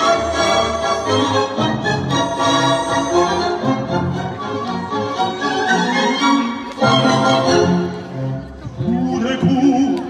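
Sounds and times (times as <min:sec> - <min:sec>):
orchestral music over loudspeakers: 0:00.0 - 0:10.0.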